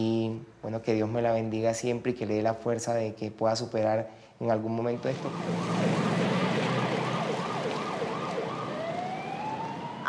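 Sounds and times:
ambulance siren: 0:04.9 - 0:10.0.

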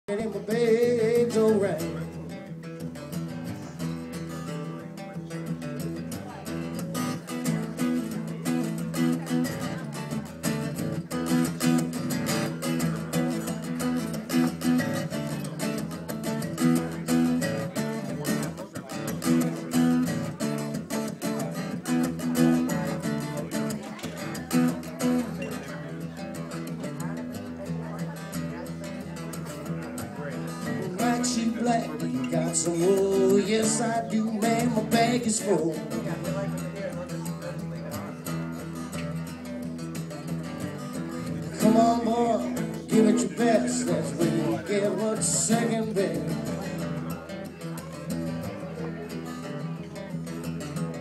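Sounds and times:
acoustic guitar strumming: 0:00.1 - 0:51.0.

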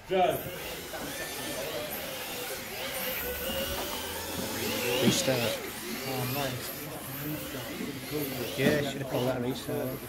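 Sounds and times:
electric motors whining: 0:00.0 - 0:10.0.

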